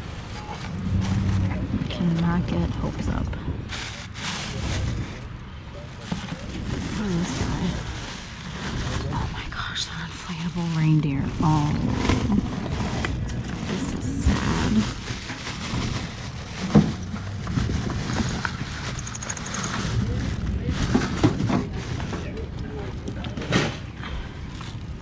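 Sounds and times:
plastic bags rustling: 0.0s - 23.1s.

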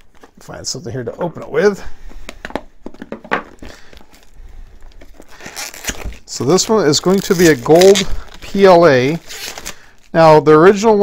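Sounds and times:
packaging crinkling: 3.5s - 10.4s.

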